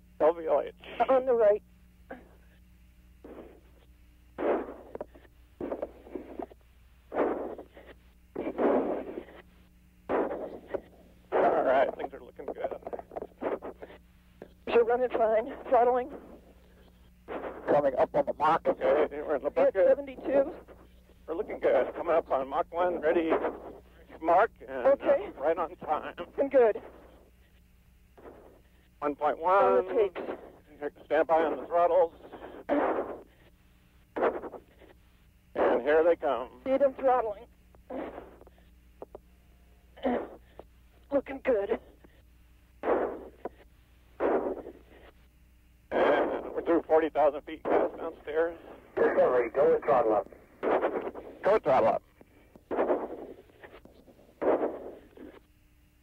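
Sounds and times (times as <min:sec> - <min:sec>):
muffled radio bursts: 0:00.0 - 0:56.0
steady low hum: 0:00.0 - 0:56.0.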